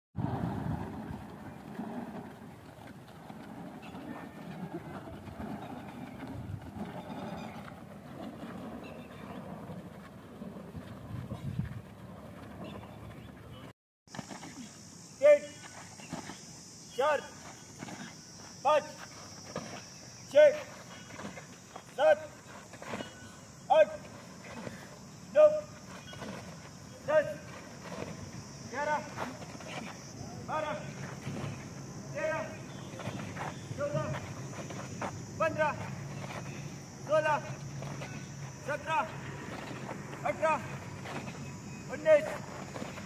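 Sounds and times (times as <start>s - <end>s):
man shouting drill counts: 18.6s - 19.0s, 20.3s - 20.7s, 21.9s - 22.4s, 23.7s - 24.1s, 25.3s - 25.8s, 27.0s - 27.5s, 28.7s - 31.0s, 32.1s - 32.6s, 35.4s - 35.9s, 37.0s - 39.2s, 40.2s - 40.8s.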